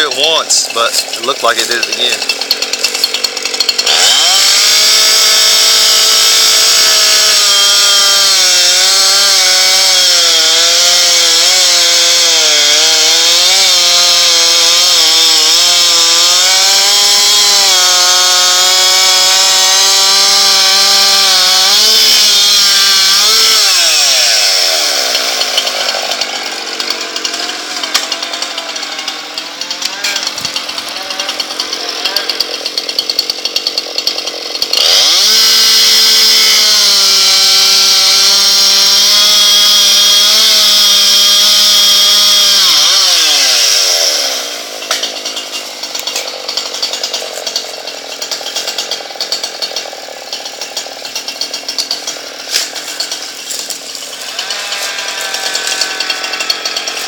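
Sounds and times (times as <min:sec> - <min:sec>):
chainsaw cutting wood: 0:00.0 - 0:57.0.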